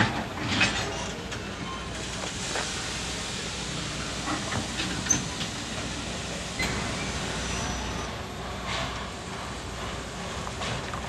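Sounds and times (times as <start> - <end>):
steam locomotive rumble and hiss: 0.0 - 11.0.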